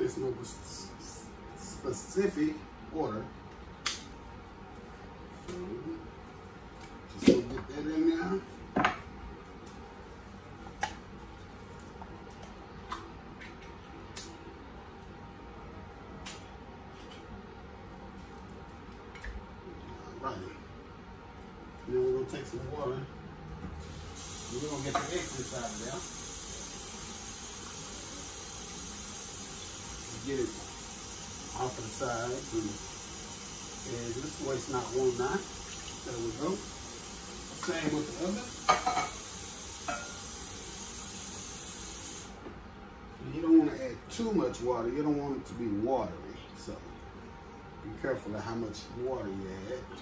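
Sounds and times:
room noise hiss: 0.0 - 50.0.

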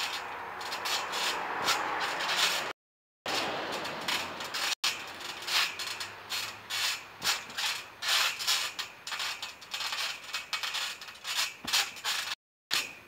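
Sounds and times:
trampoline springs creaking: 0.0 - 13.0.

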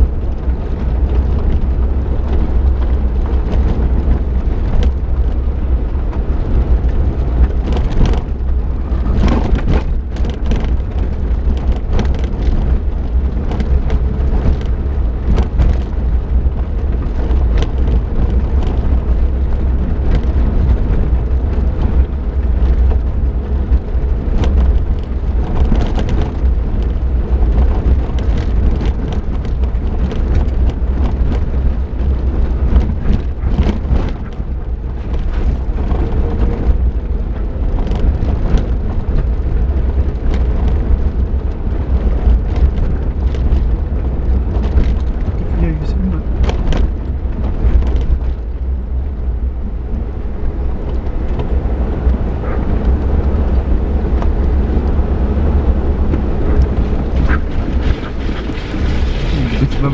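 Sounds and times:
vehicle rumble on gravel: 0.0 - 59.9
knocks and rattles: 6.1 - 23.1, 23.8 - 41.0.

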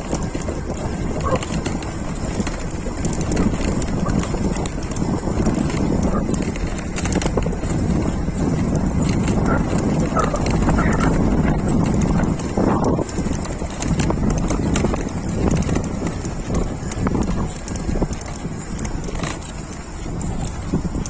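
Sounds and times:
steady rumble: 0.0 - 21.0
wind buffeting microphone: 0.0 - 21.0.

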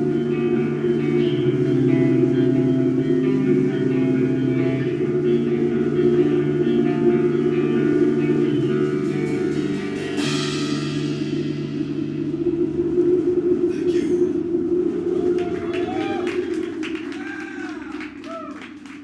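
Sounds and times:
distorted electric guitar: 0.0 - 19.0
drum kit: 0.0 - 19.0
electric bass: 0.0 - 19.0
cymbal crash ringing: 8.0 - 18.2.

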